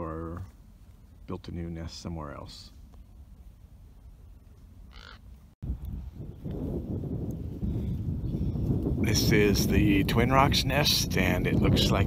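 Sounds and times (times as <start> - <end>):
faint wind: 0.0 - 12.0
wind rumbling on microphone: 0.0 - 12.0.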